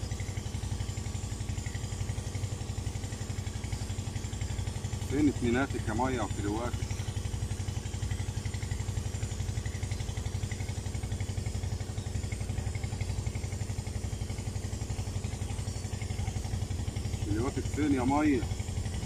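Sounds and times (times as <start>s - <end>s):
small engine running steadily: 0.0s - 19.0s.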